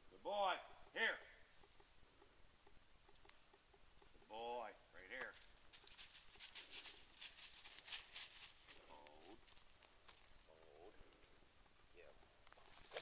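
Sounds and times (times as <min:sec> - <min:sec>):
dog running through dry leaves: 0:05.4 - 0:08.9.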